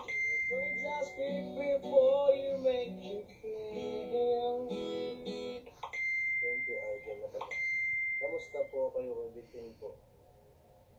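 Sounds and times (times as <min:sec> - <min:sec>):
high-pitched electronic beep: 0:00.0 - 0:01.4, 0:06.0 - 0:08.9.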